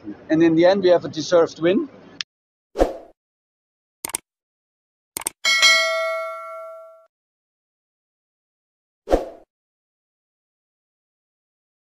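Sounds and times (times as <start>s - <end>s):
double mouse click: 4.0s - 4.2s, 5.2s - 5.4s
notification bell ding: 5.4s - 7.1s.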